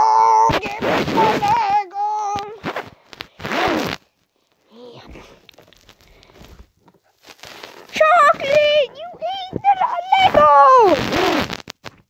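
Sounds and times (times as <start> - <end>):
child making wordless sounds: 0.0 - 2.6, 7.9 - 11.3
faint handling noise: 0.6 - 10.5.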